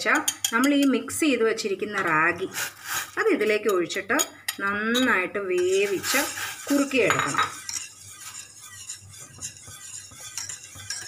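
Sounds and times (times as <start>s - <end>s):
whisk scraping metal pot: 1.9s - 11.0s.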